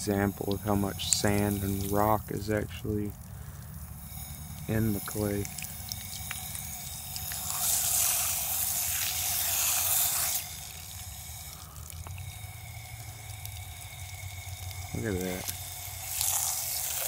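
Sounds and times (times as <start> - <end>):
water dripping and trickling: 0.0 - 17.0.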